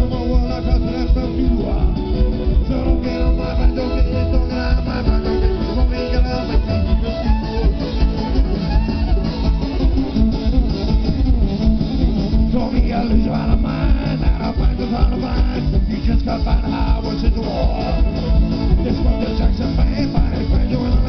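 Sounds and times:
live band playing fast song: 0.0s - 21.0s
plucked string instruments: 0.0s - 21.0s.

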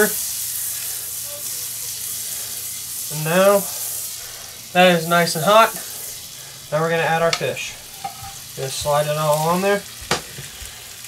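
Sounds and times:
butter sizzling in frying pan: 0.0s - 11.0s.

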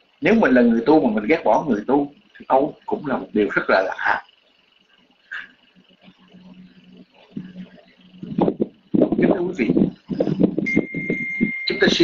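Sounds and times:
steady high beep: 0.2s - 12.0s.

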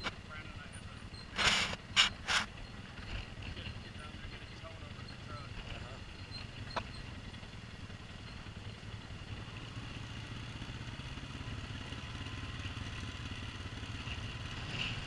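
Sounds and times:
atv engine running: 0.0s - 15.0s.

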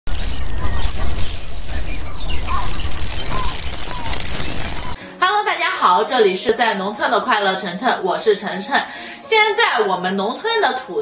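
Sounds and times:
high bird chirps: 0.2s - 5.0s.

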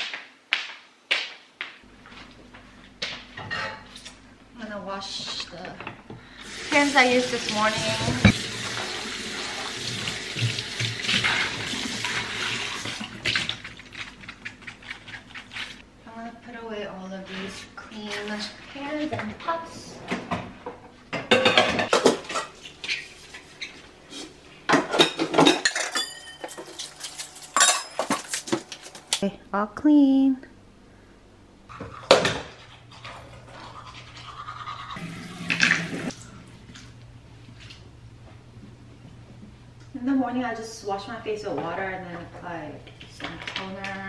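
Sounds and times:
tap water running into a sink: 6.4s - 13.6s
pans and dishes clattering: 21.1s - 23.0s, 24.7s - 28.7s.

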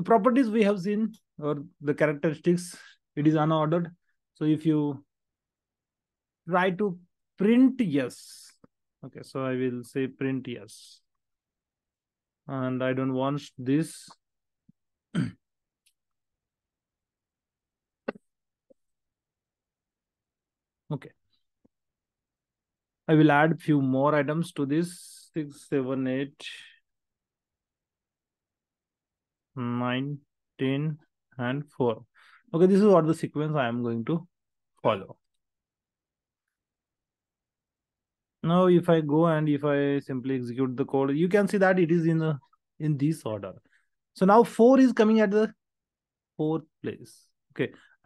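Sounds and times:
man clearing his throat: 15.1s - 15.5s.

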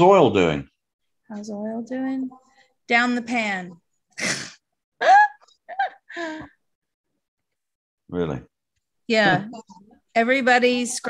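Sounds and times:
person laughing: 5.0s - 6.5s.

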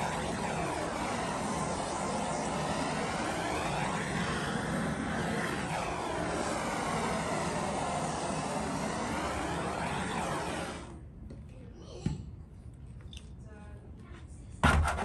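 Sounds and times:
propane torch flame hissing: 0.0s - 11.0s.

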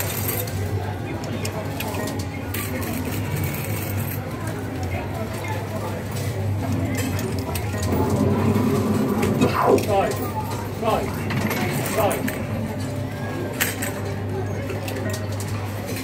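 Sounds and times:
background chatter: 0.0s - 16.0s
coins clinking: 1.5s - 5.1s
steady low hum: 6.3s - 13.6s.

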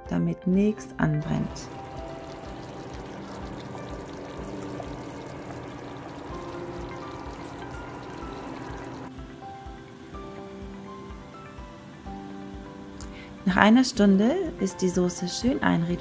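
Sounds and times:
background music with steady beat: 0.0s - 16.0s
sauce bubbling and popping in pot: 1.6s - 9.1s.

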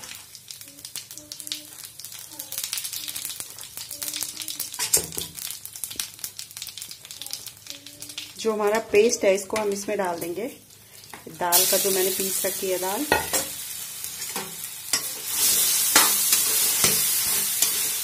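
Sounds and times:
seeds crackling in hot oil: 0.0s - 18.0s.

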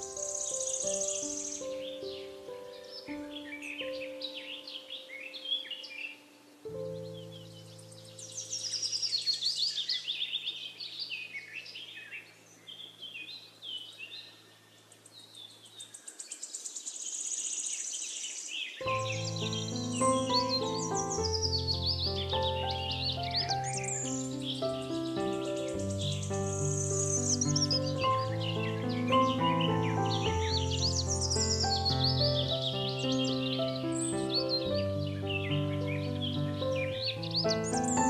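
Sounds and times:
soft piano music: 0.0s - 9.9s, 18.8s - 38.0s
birds chirping and trilling: 0.0s - 38.0s.

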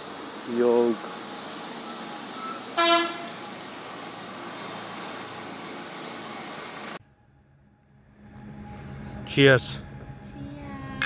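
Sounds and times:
vehicle horn toot: 2.4s - 3.6s.

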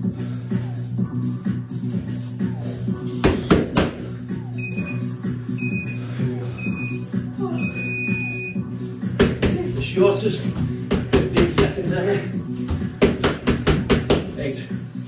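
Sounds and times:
background music: 0.0s - 15.0s
timer beeps: 4.6s - 6.0s, 6.6s - 8.6s.

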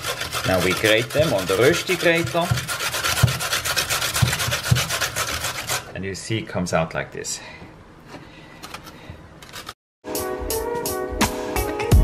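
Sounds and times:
potato scraping on metal grater: 0.0s - 5.9s, 9.4s - 9.8s
background music: 10.0s - 12.0s.

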